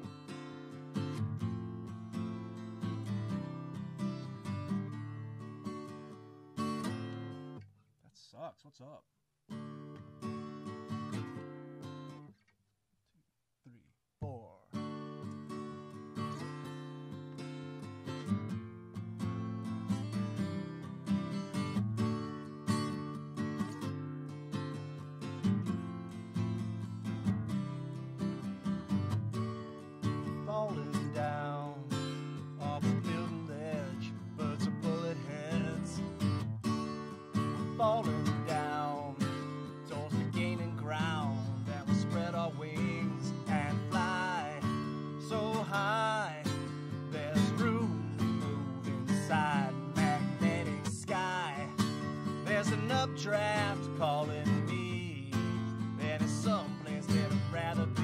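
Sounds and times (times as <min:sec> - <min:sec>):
acoustic guitar strumming: 0:00.0 - 0:07.7, 0:09.5 - 0:12.4, 0:14.7 - 0:58.0
man singing: 0:30.3 - 0:36.2, 0:37.6 - 0:58.0.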